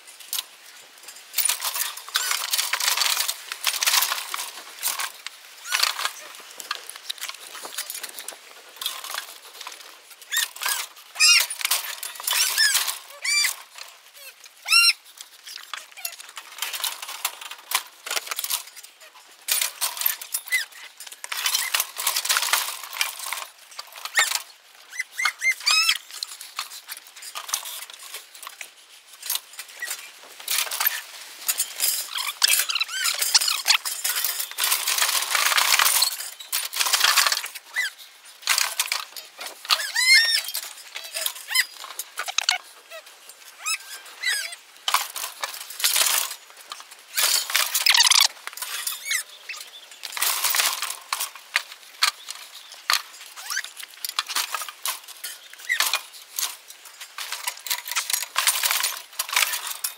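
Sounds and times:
short high squeaks: 0:10.3 - 0:13.6, 0:14.2 - 0:16.2, 0:24.9 - 0:26.1, 0:32.0 - 0:34.0, 0:37.7 - 0:38.0, 0:39.3 - 0:44.6, 0:47.3 - 0:49.7.

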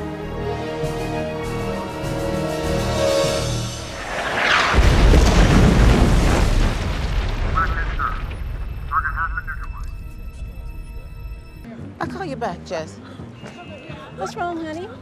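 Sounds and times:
dramatic music: 0:00.0 - 0:06.6, 0:08.5 - 0:14.8
large explosion boom: 0:04.3 - 0:08.9.

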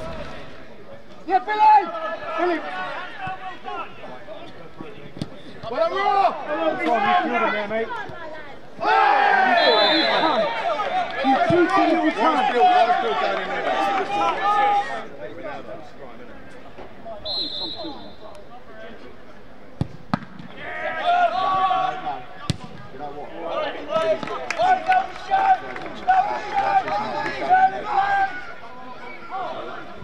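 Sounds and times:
players shouting: 0:01.2 - 0:15.7, 0:20.5 - 0:30.0
referee's whistle: 0:09.5 - 0:10.6, 0:17.2 - 0:18.3.

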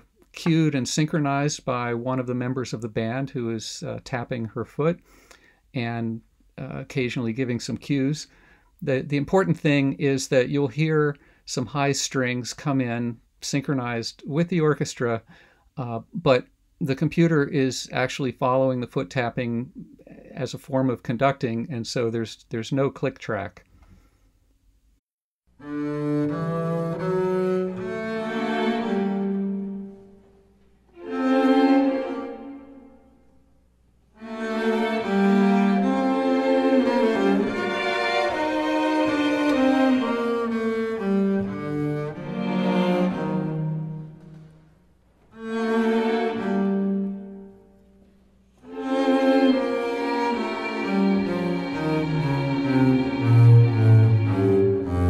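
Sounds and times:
jazz ensemble with strings: 0:25.6 - 0:30.2, 0:34.2 - 0:44.6, 0:48.7 - 0:55.0
low bass notes: 0:50.2 - 0:55.0.

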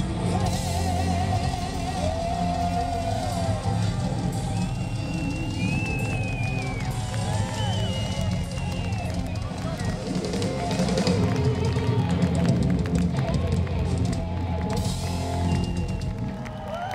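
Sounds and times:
live rock band playing: 0:00.0 - 0:16.8
electric guitar: 0:00.0 - 0:16.9.

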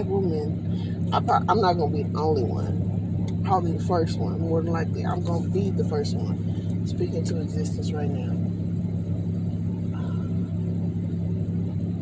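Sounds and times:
car drone from inside cabin: 0:00.0 - 0:12.0.

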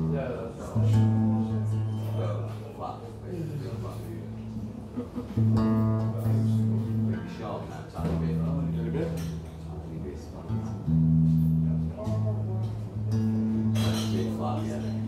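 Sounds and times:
electric guitar low notes ringing: 0:00.0 - 0:15.0
murmured talk: 0:00.0 - 0:15.0.

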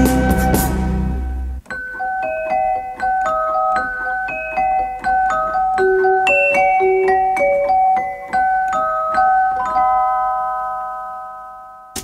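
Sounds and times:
pop song starting: 0:00.0 - 0:01.6
bell-like keyboard chord ringing: 0:01.7 - 0:12.0.

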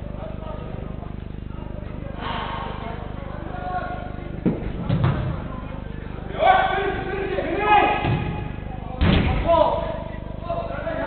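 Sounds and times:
players shouting: 0:06.2 - 0:08.5
football struck hard: 0:08.0 - 0:09.5.

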